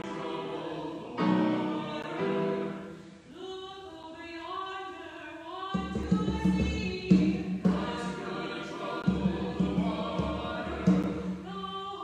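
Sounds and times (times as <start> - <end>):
choir singing a hymn: 0.0 - 3.0, 7.1 - 11.9.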